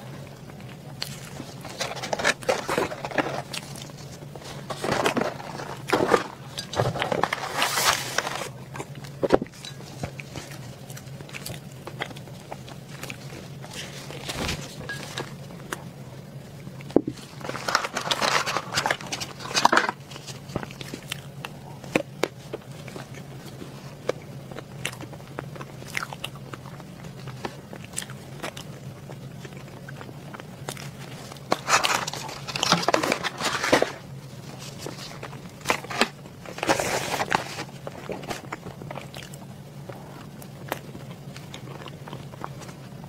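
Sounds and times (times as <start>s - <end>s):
chewing cake: 0.0s - 43.0s
steady low hum: 0.0s - 43.0s
plastic tray crinkling: 1.0s - 10.9s, 17.0s - 21.3s, 30.8s - 38.9s.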